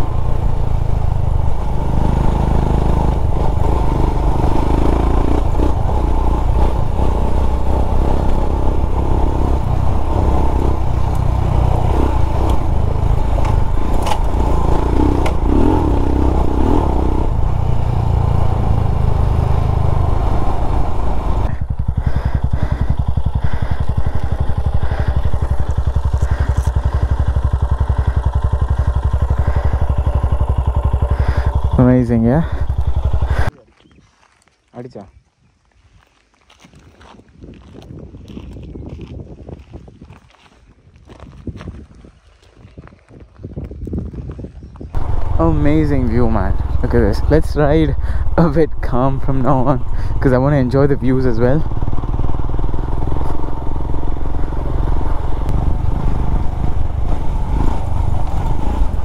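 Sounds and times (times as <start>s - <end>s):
motorcycle engine running: 0.0s - 33.6s, 37.5s - 59.0s.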